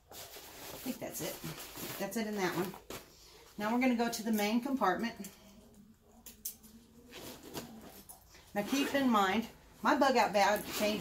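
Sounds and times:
bag fabric rustling: 0:07.1 - 0:09.3, 0:10.4 - 0:11.0
zipper being pulled open: 0:08.6 - 0:09.2, 0:10.6 - 0:11.0.

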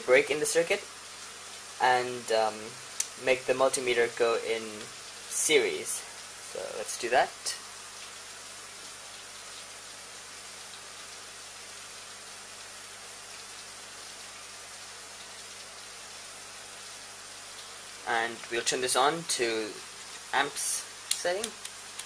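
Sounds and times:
steady low hiss: 0:00.0 - 0:22.0.

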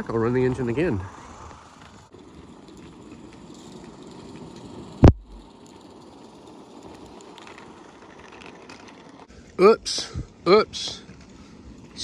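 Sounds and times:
model steam locomotive running: 0:00.0 - 0:10.0.

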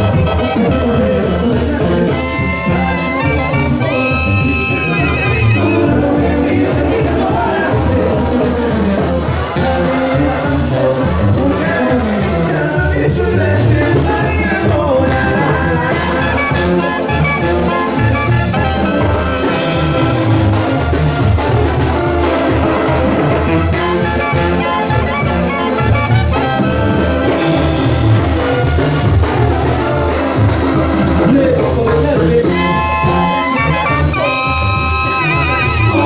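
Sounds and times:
brass band through pa: 0:00.0 - 0:36.0.

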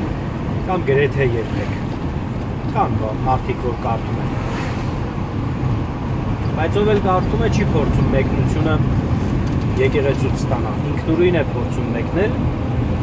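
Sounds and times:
vehicle engine and road noise: 0:00.0 - 0:13.0.

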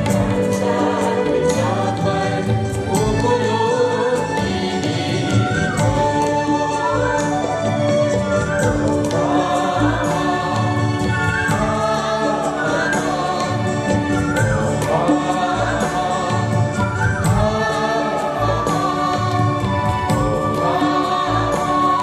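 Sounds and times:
instrumental accompaniment: 0:00.0 - 0:22.0
mixed choir singing: 0:00.0 - 0:22.0.

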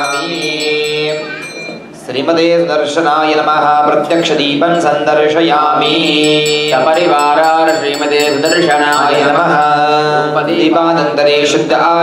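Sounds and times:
man chanting into a microphone: 0:00.0 - 0:01.4, 0:02.1 - 0:12.0.

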